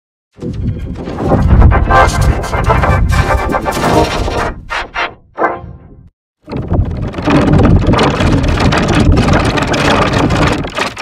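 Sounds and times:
distorted noisy rumble: 0:00.7 - 0:04.5, 0:06.5 - 0:11.0.

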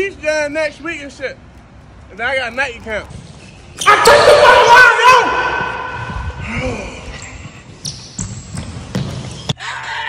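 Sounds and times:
basketball bouncing on hardwood: 0:08.2 - 0:09.5.

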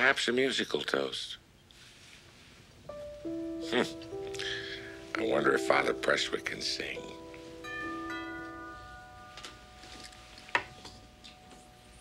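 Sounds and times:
upright piano notes ringing: 0:02.9 - 0:12.0.

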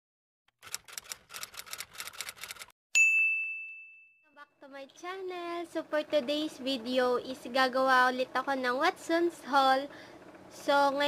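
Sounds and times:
typewriter key clacks: 0:00.6 - 0:02.7.

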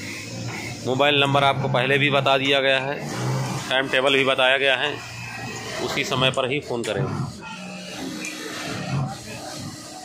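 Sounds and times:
industrial sewing machines running: 0:00.0 - 0:10.0.

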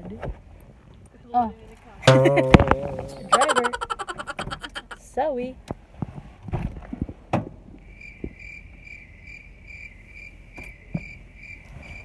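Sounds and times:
sharp knock: 0:02.1 - 0:04.6.

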